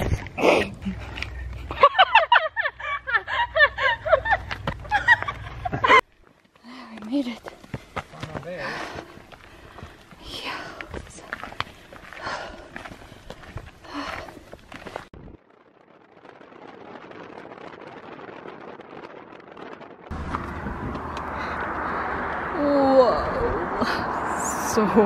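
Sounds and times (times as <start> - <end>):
footsteps on gravel trail: 4.4 - 15.2, 20.1 - 21.7
heavy breathing: 6.6 - 15.1.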